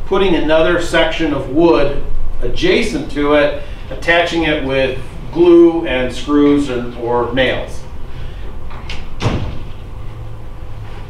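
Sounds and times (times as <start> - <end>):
low room hum: 0.0 - 11.0
dull thud: 9.2 - 9.8.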